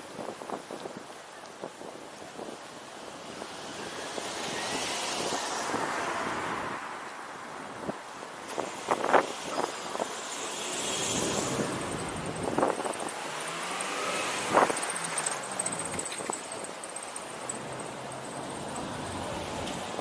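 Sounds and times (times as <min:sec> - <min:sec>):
city street traffic: 0:00.0 - 0:20.0
passing car: 0:03.2 - 0:20.0.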